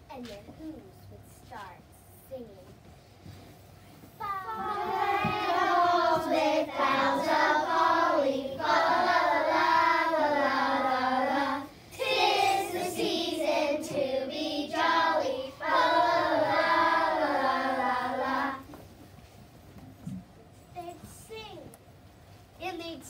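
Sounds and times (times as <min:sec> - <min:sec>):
children singing: 0:04.5 - 0:18.6.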